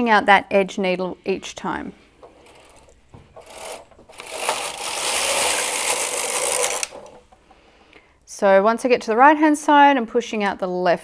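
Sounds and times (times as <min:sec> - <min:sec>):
knitting machine carriage rasp: 0:02.3 - 0:07.2.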